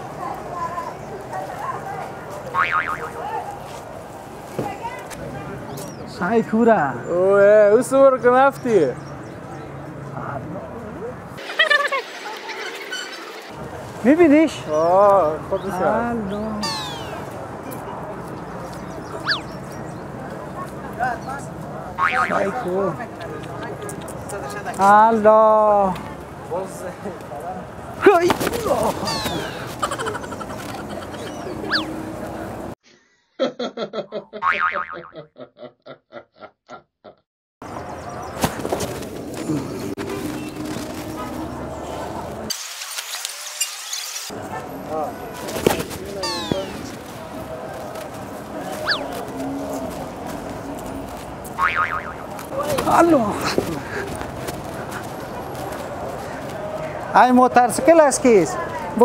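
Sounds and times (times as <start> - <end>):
street background noise: 0.0 - 32.8, 37.6 - 59.0
comic boing sound: 2.6 - 3.1, 22.0 - 22.4, 34.4 - 35.2
faint voices: 9.0 - 32.8, 39.2 - 42.5, 44.3 - 59.0.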